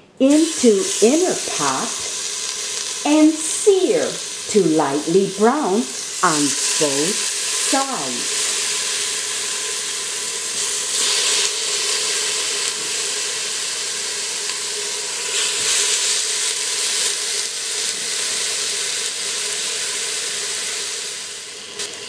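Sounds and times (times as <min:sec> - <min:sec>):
chicken sizzling in a pot: 0:00.0 - 0:22.0.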